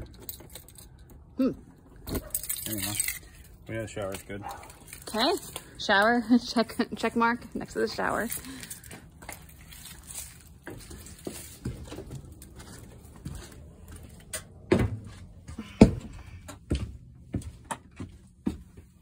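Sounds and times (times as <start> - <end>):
footsteps on trailer floor: 8.0 - 19.0.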